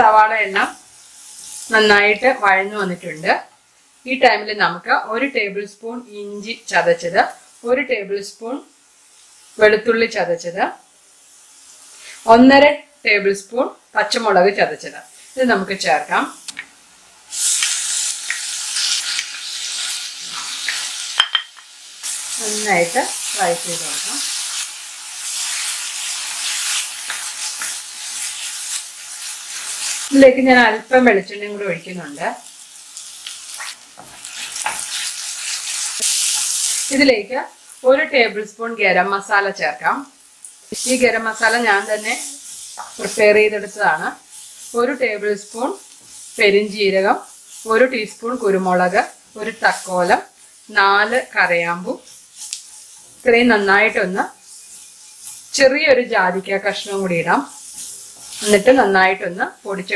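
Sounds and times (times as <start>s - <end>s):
onions sizzling in a pan: 0.0s - 59.9s
wooden spatula scraping a pan: 52.0s - 55.7s, 56.6s - 58.7s.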